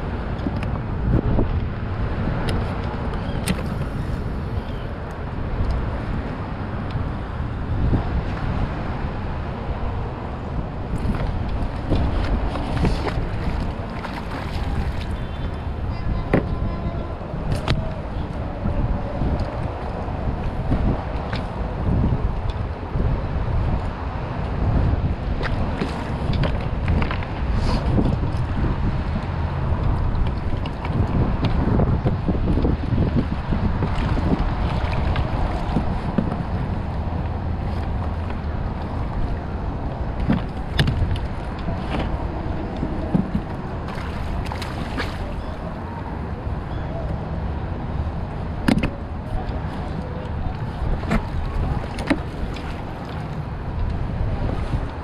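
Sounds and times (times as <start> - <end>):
wind buffeting microphone: 0.0 - 55.0
water slapping against hull: 10.4 - 22.7, 23.6 - 55.0.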